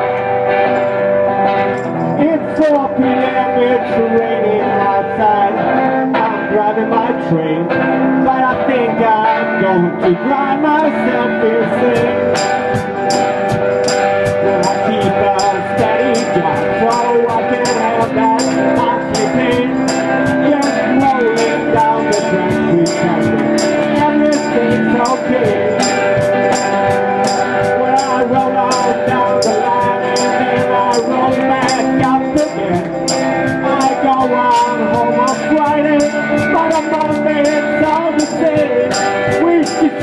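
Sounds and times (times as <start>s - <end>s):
hand percussion beat: 11.9s - 40.0s.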